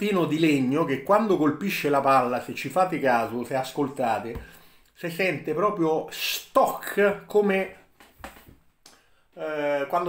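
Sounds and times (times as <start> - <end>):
man speaking: 0.0 - 7.9, 9.4 - 10.0.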